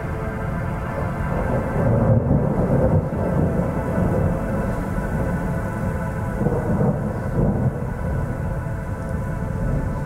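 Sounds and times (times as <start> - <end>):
low rolling thunder: 0.0 - 10.0
synthesizer drone: 0.0 - 10.0.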